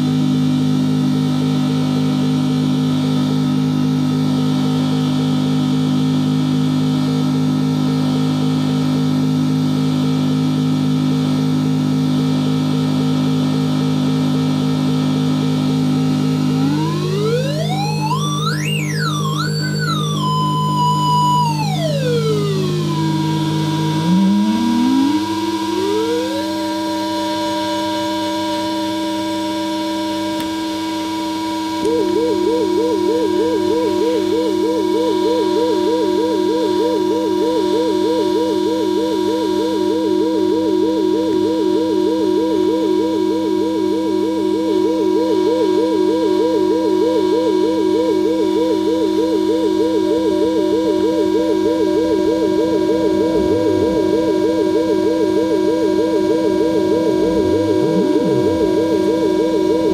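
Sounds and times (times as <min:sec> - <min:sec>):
electronic drone tones: 0:14.9 - 0:59.9.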